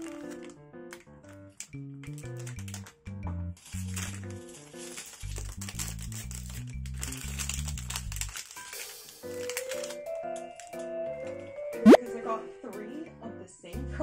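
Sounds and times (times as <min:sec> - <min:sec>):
plastic wrapper crinkling: 0:00.0 - 0:03.0, 0:03.6 - 0:10.8
background music: 0:06.0 - 0:14.0.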